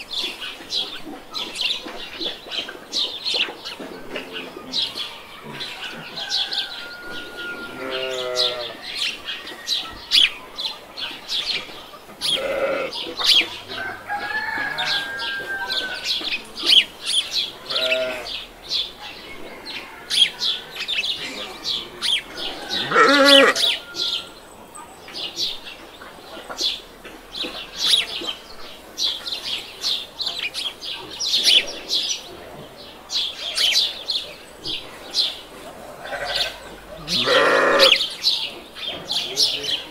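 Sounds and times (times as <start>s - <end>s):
birds chirping: 0.0s - 39.9s
farm animals calling: 0.0s - 39.9s.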